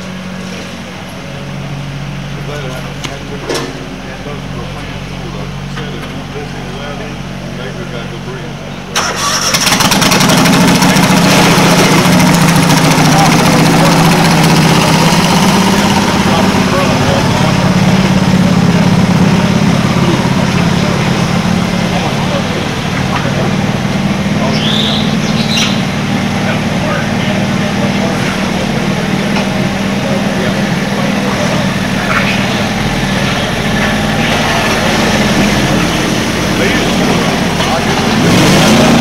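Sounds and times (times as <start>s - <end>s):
quiet engine idling: 0.0s - 39.0s
garden tractor engine running: 8.8s - 39.0s.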